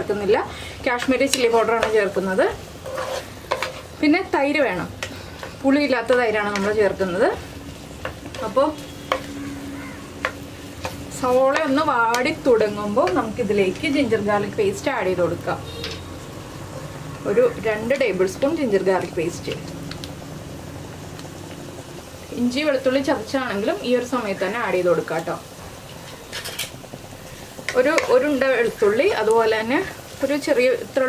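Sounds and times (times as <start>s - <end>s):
onions sizzling in hot oil: 0.0s - 31.0s.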